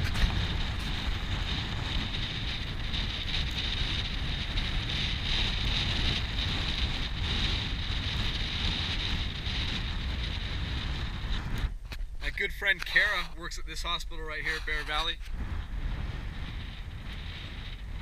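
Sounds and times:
wind on microphone: 0.0 - 18.0.

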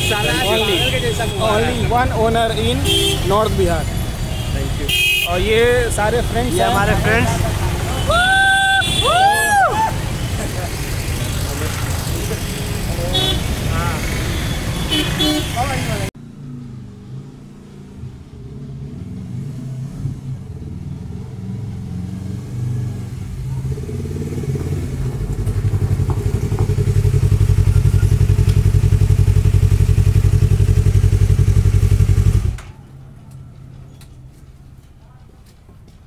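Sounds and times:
motorcycle engine running: 25.0 - 32.6.

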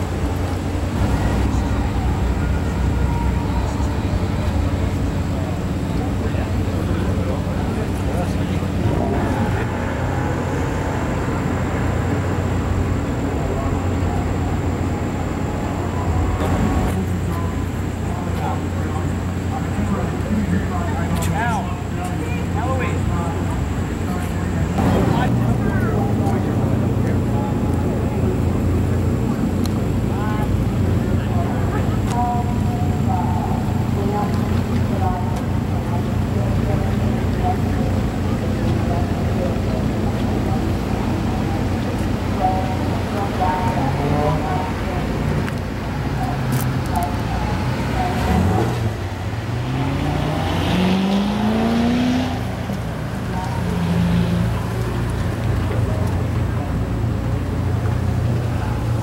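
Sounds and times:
car engine revving: 0.0 - 59.0
low engine rumble: 0.0 - 59.0
people chattering: 0.0 - 59.0.

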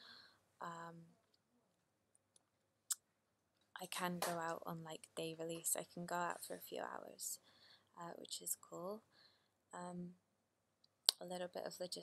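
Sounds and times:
woman speaking: 0.6 - 1.2, 3.8 - 7.4, 8.0 - 9.1, 9.8 - 10.2, 11.1 - 12.0.

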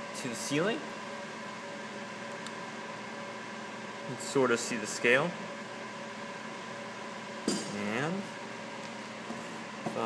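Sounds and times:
faint fan hum: 0.0 - 10.0.

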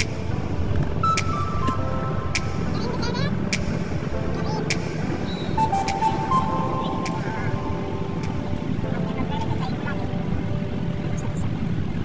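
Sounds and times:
background music with sharp beat: 0.0 - 8.8
road noise inside moving car: 0.0 - 12.0.

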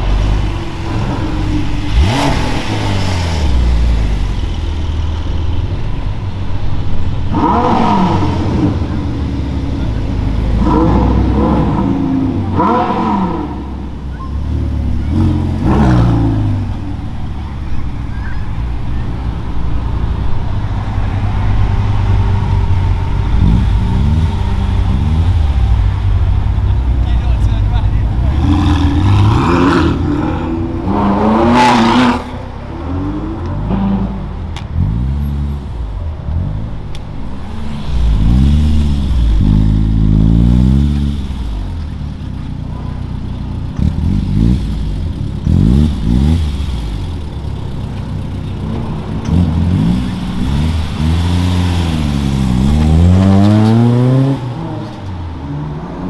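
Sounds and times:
car accelerating away: 0.0 - 5.6, 7.2 - 56.0
sports car engines revving: 0.0 - 56.0.

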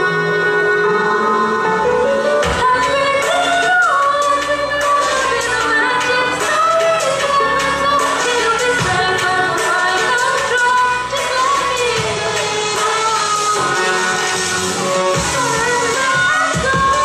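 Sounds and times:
woman singing: 0.0 - 17.0.

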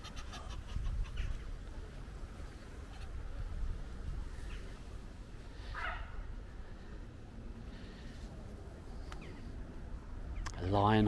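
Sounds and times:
low outdoor rumble: 0.0 - 11.0
fowl calling: 5.6 - 6.2.

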